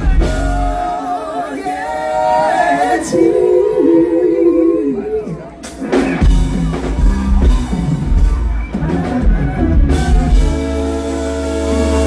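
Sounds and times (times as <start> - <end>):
deep bass: 0.0 - 0.8, 6.1 - 12.0
voices in harmony: 0.0 - 5.6.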